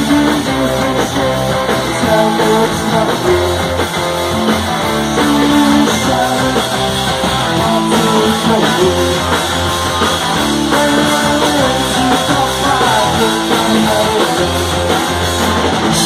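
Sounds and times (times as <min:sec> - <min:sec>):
electric guitars: 0:00.0 - 0:16.0
live rock band playing: 0:00.0 - 0:16.0.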